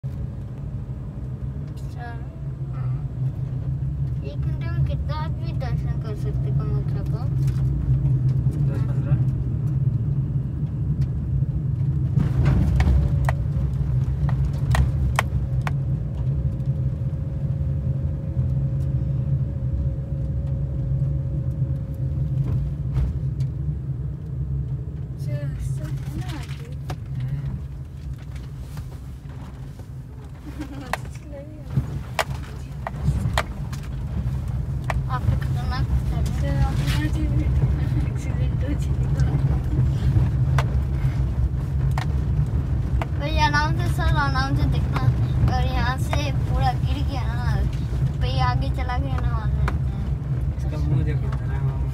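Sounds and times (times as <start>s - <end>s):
car driving on gravel road: 0.0s - 51.9s
engine and tyre rumble: 0.0s - 51.9s.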